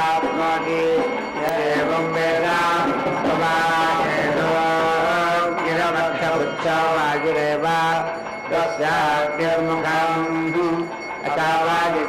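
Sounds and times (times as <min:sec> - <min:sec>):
melodic chanting: 0:00.0 - 0:12.0.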